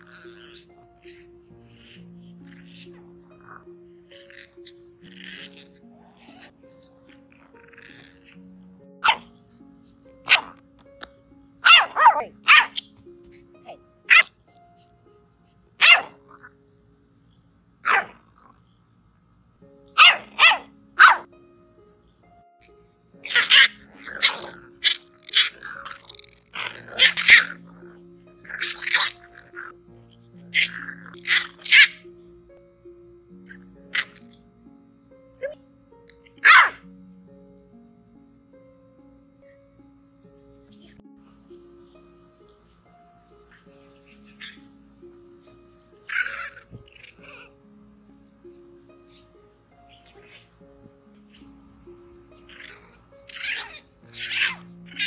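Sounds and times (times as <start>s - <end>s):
puppies squeaking: 0.0s - 9.6s, 23.2s - 29.8s, 30.4s - 32.1s, 33.4s - 34.4s, 43.5s - 47.6s, 49.0s - 51.6s, 52.3s - 55.0s
soft background music: 0.0s - 55.0s
puppy yapping: 9.0s - 9.3s, 10.2s - 10.6s, 11.6s - 13.0s, 13.7s - 14.4s, 15.8s - 16.5s, 17.8s - 18.2s, 20.0s - 21.3s, 23.2s - 27.7s, 28.4s - 29.7s, 30.5s - 32.1s, 33.5s - 34.4s, 36.4s - 36.8s, 43.5s - 44.7s, 46.0s - 47.6s, 52.4s - 55.0s.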